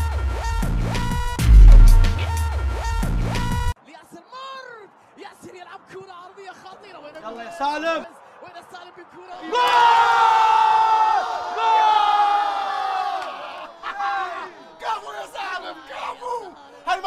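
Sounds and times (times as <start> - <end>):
group of men yelling: 7.4 - 17.0.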